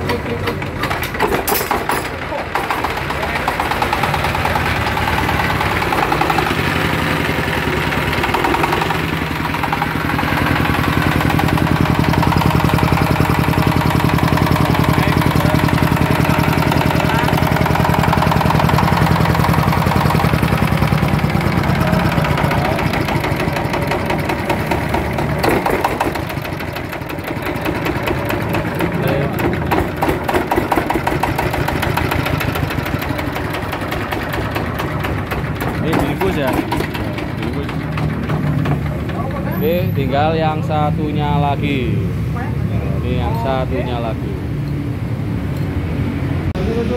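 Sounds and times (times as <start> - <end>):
diesel engine clattering: 0.0 - 46.9.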